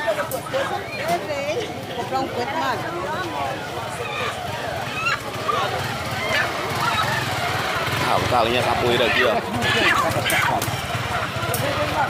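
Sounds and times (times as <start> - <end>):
voices talking over one another: 0.0 - 12.0.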